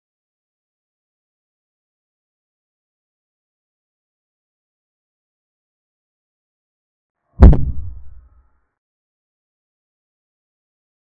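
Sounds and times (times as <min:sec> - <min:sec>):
deep thud with sharp click: 0:07.4 - 0:08.3.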